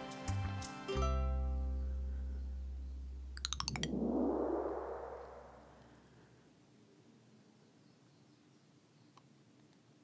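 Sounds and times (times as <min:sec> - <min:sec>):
low synth bass note: 0:03.4 - 0:05.9
whoosh: 0:03.4 - 0:06.1.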